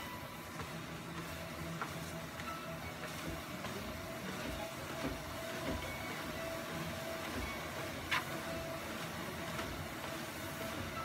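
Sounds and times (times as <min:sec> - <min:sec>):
footsteps thudding on treadmill: 0:00.0 - 0:11.0
treadmill belt running: 0:00.0 - 0:11.0.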